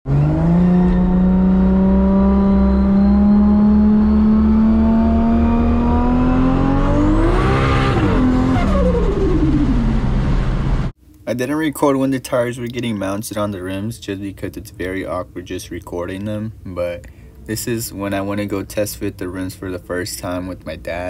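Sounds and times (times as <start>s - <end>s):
van engine accelerating: 0.1s - 11.0s.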